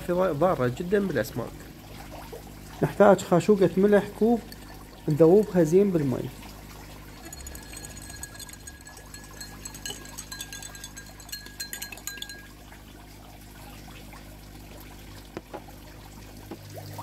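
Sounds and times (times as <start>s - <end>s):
steady low hum: 0.0s - 17.0s
metal spoon clinking in glass: 4.4s - 4.8s, 7.1s - 12.6s.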